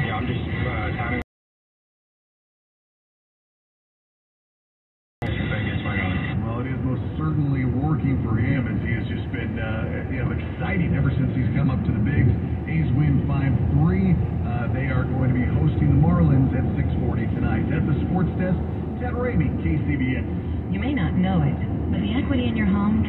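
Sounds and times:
road noise: 0.0 - 1.2, 5.2 - 23.0
talk radio speech: 0.0 - 1.2, 5.2 - 23.0.

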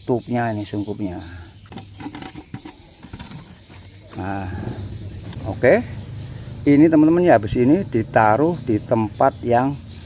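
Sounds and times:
plastic bottle clicks and rustles: 1.7 - 3.9.

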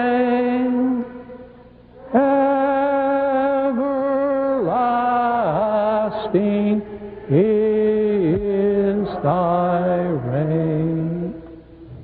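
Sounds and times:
slow chant on held notes: 0.0 - 12.0.

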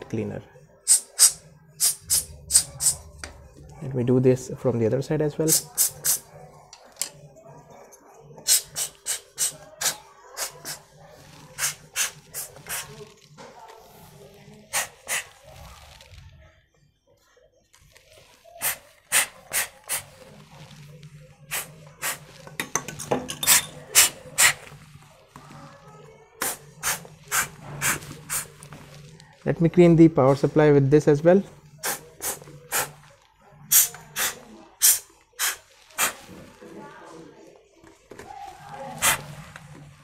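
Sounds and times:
puffs of air from plastic bottle: 18.6 - 20.1, 33.7 - 36.4.

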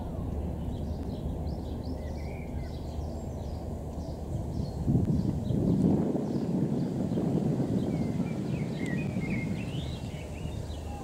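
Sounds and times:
low background rumble: 0.0 - 11.0
songbird twittering: 0.0 - 11.0.

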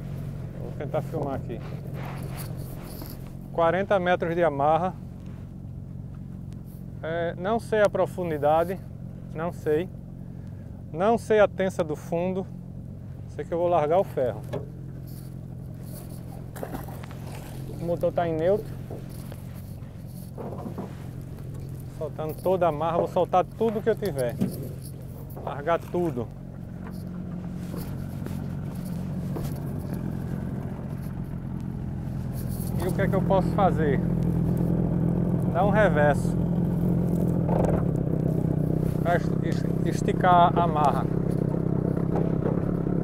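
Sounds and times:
brief rustle: 0.0 - 3.5, 14.4 - 31.4, 32.0 - 33.1
boat motor idling: 0.0 - 43.0.

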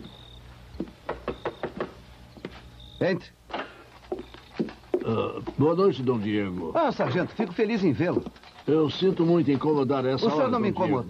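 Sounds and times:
knocking on a door: 0.8 - 2.0.

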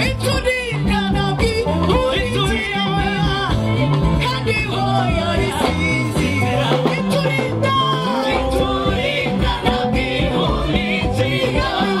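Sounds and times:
instrumental backing with bass line: 0.0 - 12.0
church choir singing: 8.1 - 12.0.

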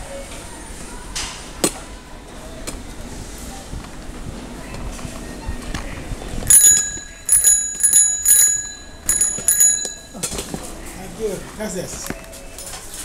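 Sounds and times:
small metal bell ringing: 6.5 - 10.4.

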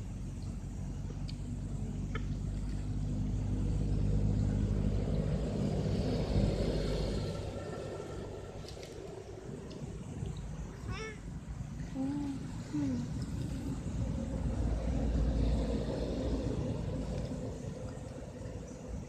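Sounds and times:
vehicle engine passing: 0.8 - 10.8, 11.6 - 19.0.

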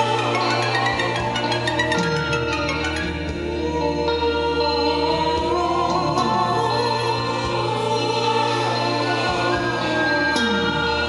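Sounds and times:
choir singing held chords: 0.0 - 11.0
live band music: 0.0 - 11.0.

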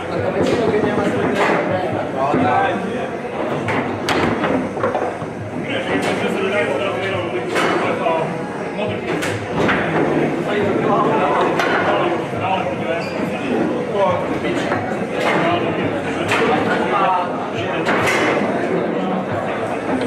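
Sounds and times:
murmur of talk in a hall: 0.0 - 20.0.

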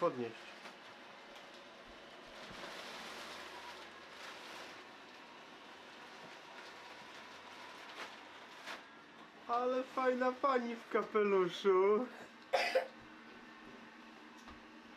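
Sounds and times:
fabric rustling: 0.6 - 9.0.

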